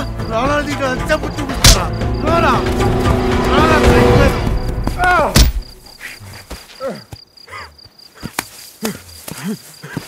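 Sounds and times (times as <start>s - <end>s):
crickets chirping: 0.0s - 10.0s
scuffs and knocks on stony ground: 4.4s - 7.2s.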